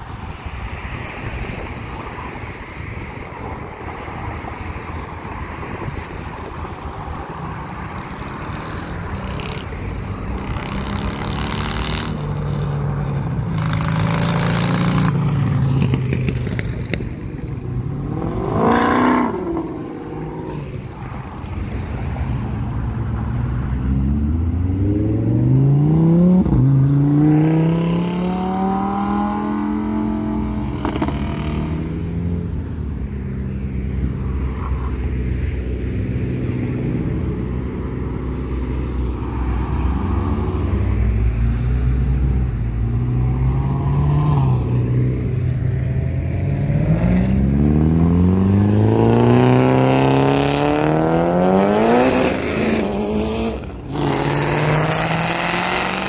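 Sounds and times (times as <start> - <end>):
car engines revving hard: 3.0 - 32.6, 35.0 - 56.0.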